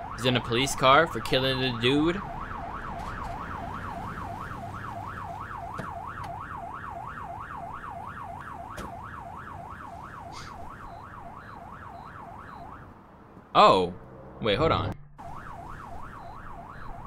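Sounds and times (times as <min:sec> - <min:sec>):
police siren yelping: 0:00.0 - 0:13.1, 0:14.8 - 0:17.0.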